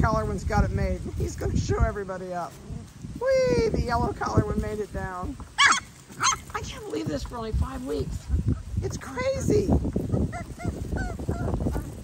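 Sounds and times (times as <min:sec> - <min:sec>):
puppies whimpering yips: 0:05.6 - 0:06.6, 0:10.0 - 0:12.0.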